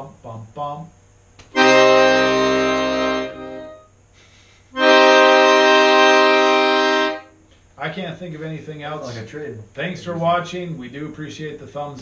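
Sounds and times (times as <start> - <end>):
piano accordion chords: 1.5 - 4.0, 4.7 - 7.4.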